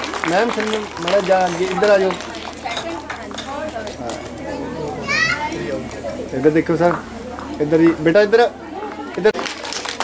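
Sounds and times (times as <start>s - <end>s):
chatter of children and adults: 0.0s - 10.0s
child's high-pitched call: 5.0s - 5.4s.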